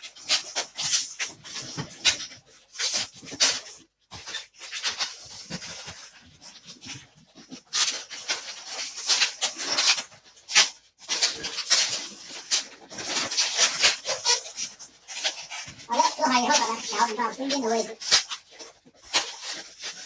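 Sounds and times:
balloon squeaking and rubbing: 0.0 - 20.0.

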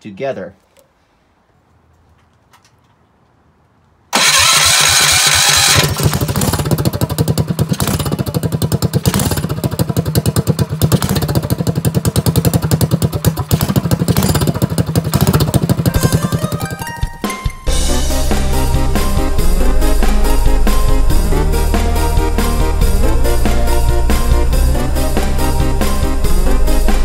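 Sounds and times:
electric starter cranking: 4.1 - 16.5
engine running: 4.1 - 16.9, 17.7 - 27.0.

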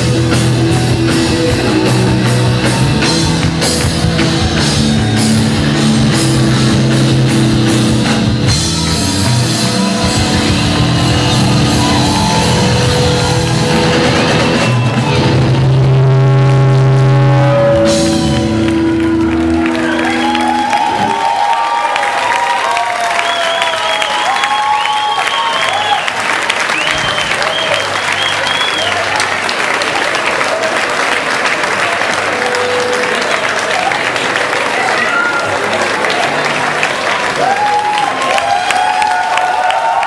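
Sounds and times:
rock band chord ringing: 0.0 - 21.5
audience applauding and cheering: 0.0 - 40.0.

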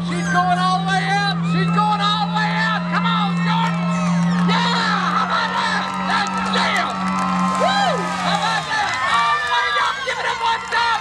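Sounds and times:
spectators whooping and cheering: 0.0 - 11.0
truck engine at high revs: 0.0 - 11.0.

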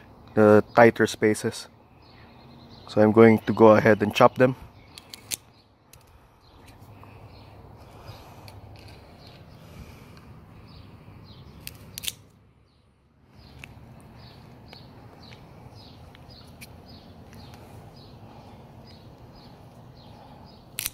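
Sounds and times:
scissors snipping stems: 4.9 - 6.9, 11.6 - 12.4, 20.7 - 20.9.

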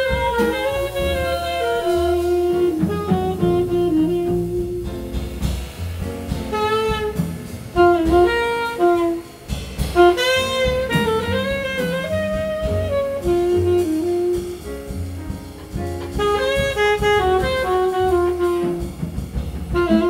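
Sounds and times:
soprano saxophone melody: 0.0 - 5.2, 6.5 - 15.0, 16.0 - 20.0
double bass: 0.0 - 20.0
drum kit: 0.0 - 20.0.

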